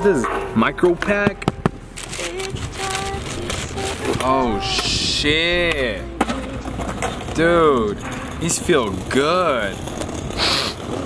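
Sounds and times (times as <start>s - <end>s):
tissue paper crinkling: 1.9s - 5.1s.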